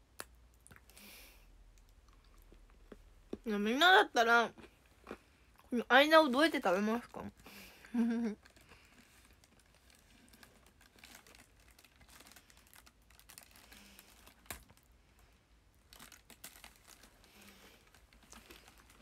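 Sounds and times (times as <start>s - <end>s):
packaging crinkling and clicks: 8.4s - 14.9s, 15.9s - 19.0s.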